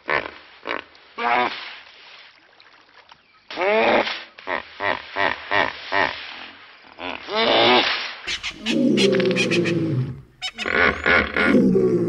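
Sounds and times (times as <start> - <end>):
hippopotamus calling: 8.3 - 12.0.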